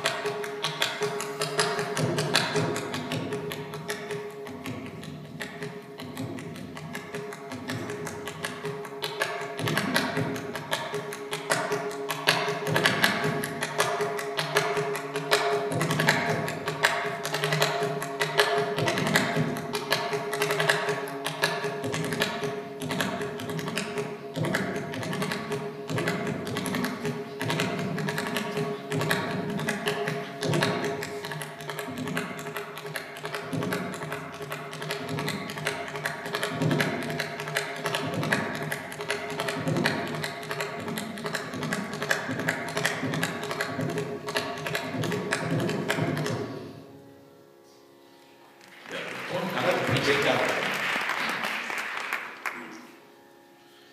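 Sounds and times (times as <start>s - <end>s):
hand drum strokes: 0.0s - 46.7s.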